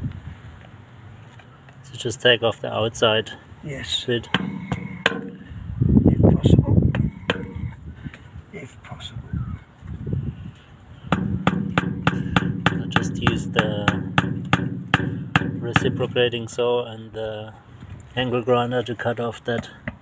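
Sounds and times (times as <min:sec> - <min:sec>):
plastic pipe fitting chipping: 0:04.3 - 0:05.5, 0:06.9 - 0:07.8, 0:11.1 - 0:16.2.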